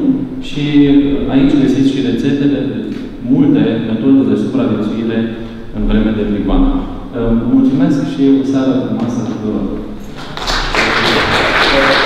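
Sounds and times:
audience applauding: 10.0 - 12.0.

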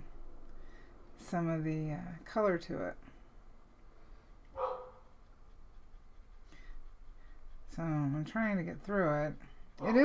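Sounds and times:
dog bark: 4.5 - 5.1.

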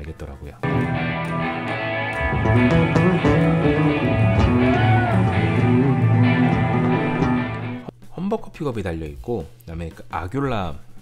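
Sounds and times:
bass guitar low notes: 0.6 - 7.9
electric guitar: 0.6 - 7.9
drums: 0.6 - 11.0.

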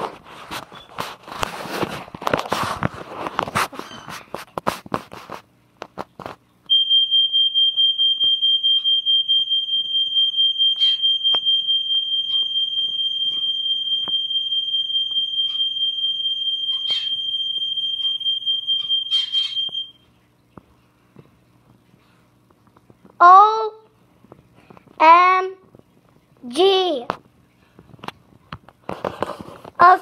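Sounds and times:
high-pitched electronic tone: 6.7 - 20.0.

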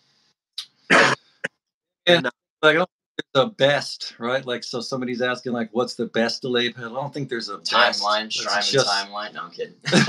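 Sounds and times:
man coughing: 0.9 - 1.2.

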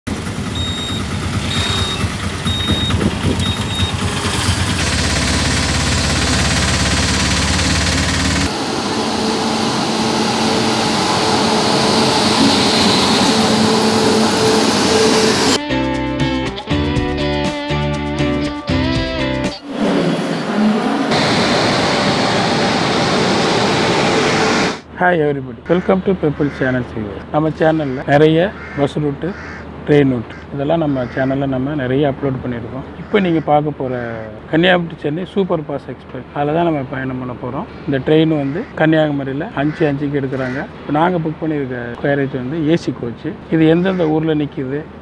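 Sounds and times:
auto-rickshaw engine running: 0.1 - 15.6
moving train rushing: 0.1 - 15.6, 19.6 - 24.8
high electronic beep: 0.6 - 4.0
low hum: 4.4 - 15.6.

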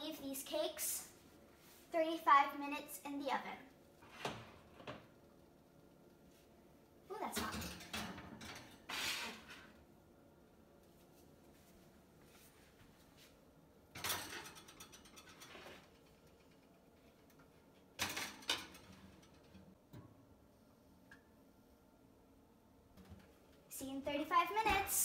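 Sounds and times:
dishes clattering on metal rack: 7.4 - 9.5, 13.9 - 16.2, 18.0 - 19.7.

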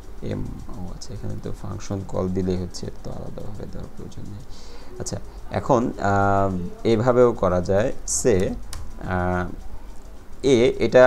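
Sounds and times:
man speaking: 0.2 - 9.6, 10.4 - 11.0.

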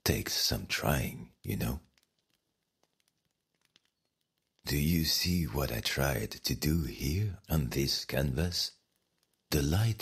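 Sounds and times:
faint ticks: 0.0 - 10.0.

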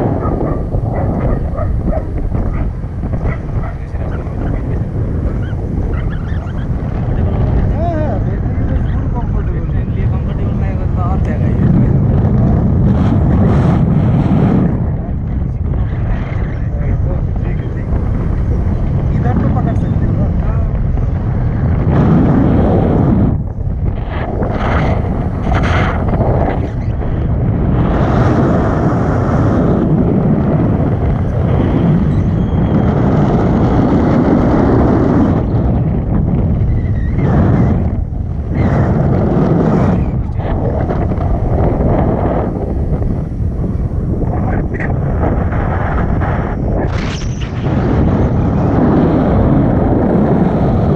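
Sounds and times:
strong wind buffeting microphone: 0.0 - 50.9.

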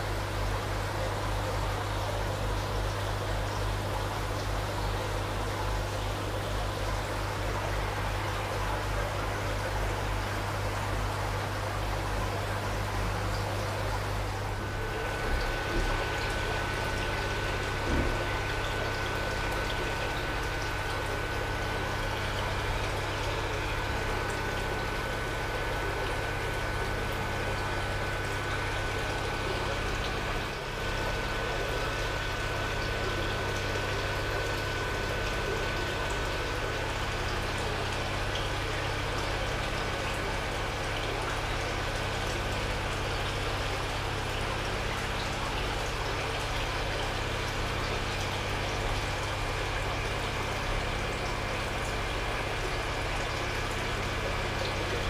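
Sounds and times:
aquarium filter running: 0.0 - 55.0
low steady hum: 0.0 - 55.0
water trickling and splashing: 0.2 - 55.0.

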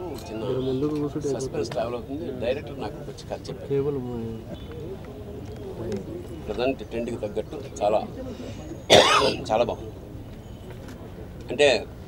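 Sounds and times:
man coughing: 8.9 - 9.4.

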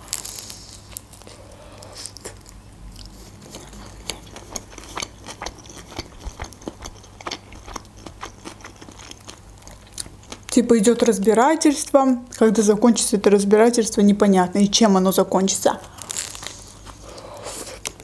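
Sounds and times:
chewing with mouth clicks: 0.1 - 10.6.

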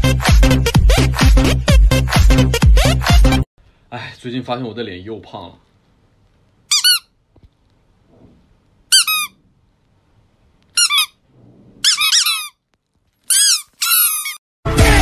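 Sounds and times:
loud music: 0.0 - 3.4, 14.7 - 15.0
high-pitched squeaks: 8.9 - 9.4, 10.8 - 11.2, 11.8 - 12.6, 13.2 - 14.4.

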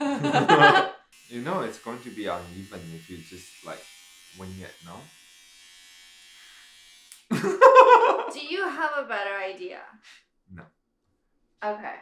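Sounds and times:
loud laughter: 0.0 - 0.9, 7.3 - 8.4
electric hair clippers buzzing: 1.2 - 7.3.

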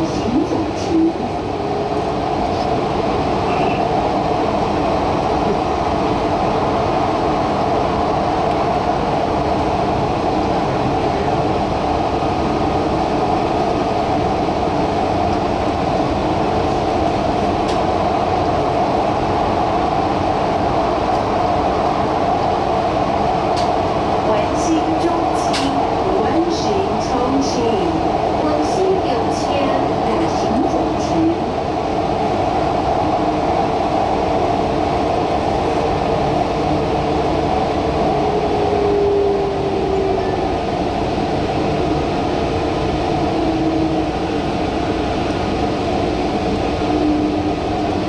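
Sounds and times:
metro train rolling and motor: 0.0 - 48.0.

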